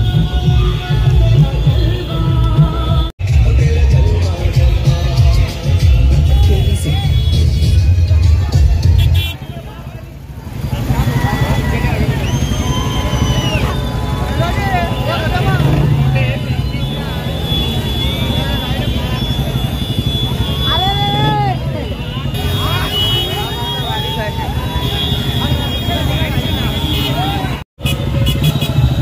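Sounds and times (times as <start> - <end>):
motorcycle engines rumbling: 0.0 - 29.0.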